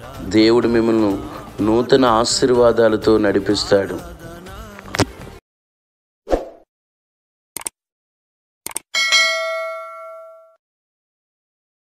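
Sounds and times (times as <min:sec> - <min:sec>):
notification bell ding: 0:09.0 - 0:10.6.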